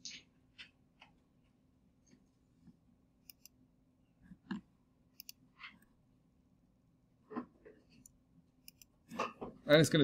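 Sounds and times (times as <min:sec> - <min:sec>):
faint steady hum: 0:00.0 - 0:10.0
computer mouse clicks: 0:03.2 - 0:03.6, 0:04.5 - 0:05.4, 0:08.0 - 0:09.0.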